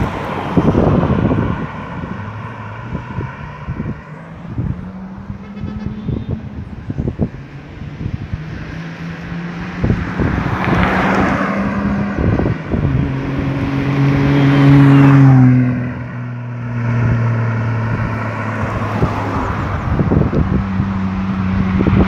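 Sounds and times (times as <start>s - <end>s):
car driving past: 7.3s - 22.0s.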